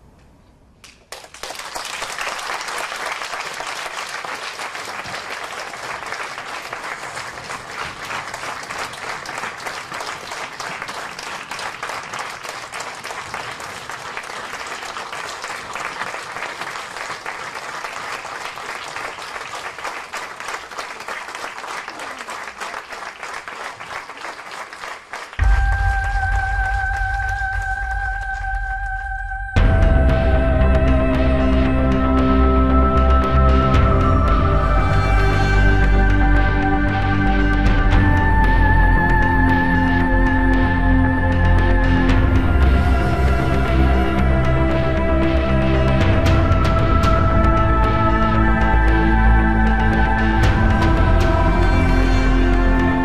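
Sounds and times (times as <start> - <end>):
audience applauding: 0.8 - 29.1
music with deep bass: 25.4 - 53.0.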